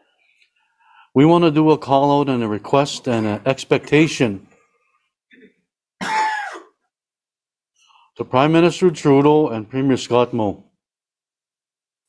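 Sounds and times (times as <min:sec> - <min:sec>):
faint short breath: 0:00.0 - 0:01.1
man clearing his throat: 0:05.3 - 0:06.8.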